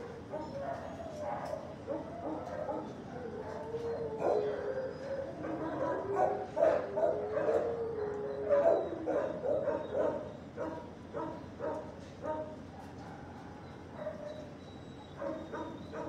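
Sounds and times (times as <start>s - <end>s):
dog yipping and barking: 0.3s - 4.9s, 5.6s - 16.0s
dog whining: 0.3s - 10.8s, 13.1s - 16.0s.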